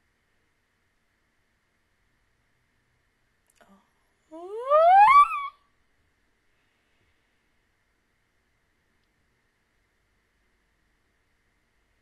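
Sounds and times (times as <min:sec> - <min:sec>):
woman squealing: 0:04.3 - 0:05.5.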